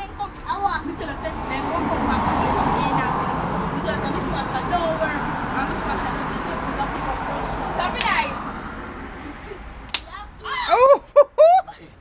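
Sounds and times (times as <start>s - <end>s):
sharp clap-like crack: 9.8s - 10.1s
child's high cry: 10.4s - 11.0s.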